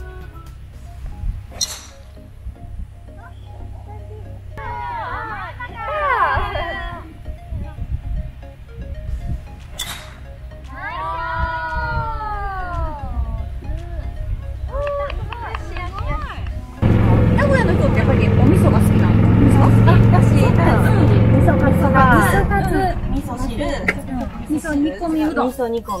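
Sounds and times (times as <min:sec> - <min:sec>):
background music: 0:00.0 - 0:26.0
golf club striking ball: 0:01.5 - 0:02.3, 0:09.6 - 0:10.8
woman calling out: 0:04.6 - 0:07.2, 0:10.7 - 0:14.0.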